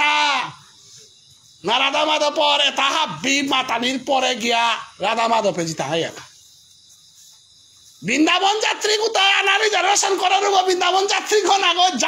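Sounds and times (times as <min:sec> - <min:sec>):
insects chirring: 0:00.0 - 0:12.0
man speaking: 0:01.6 - 0:06.4, 0:08.0 - 0:12.0.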